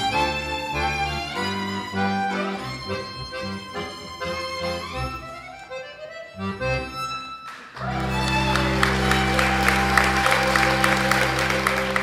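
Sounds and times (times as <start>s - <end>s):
accordion chords: 0.0s - 12.0s
violin melody: 0.0s - 12.0s.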